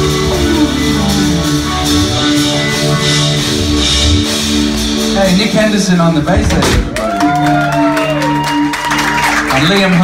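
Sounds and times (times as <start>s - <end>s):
bass and drums: 0.0s - 10.0s
electric guitars: 0.0s - 10.0s.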